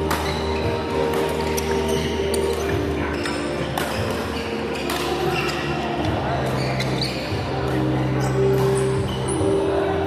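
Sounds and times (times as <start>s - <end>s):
rackets striking shuttlecocks: 0.0s - 5.8s
shoe squeaks on court floor: 0.0s - 9.6s.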